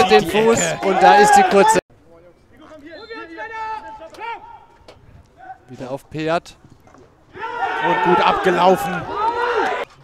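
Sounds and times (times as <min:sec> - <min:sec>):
players shouting: 0:00.0 - 0:01.8, 0:02.6 - 0:05.8, 0:07.0 - 0:10.0
outdoor background noise: 0:00.0 - 0:10.0.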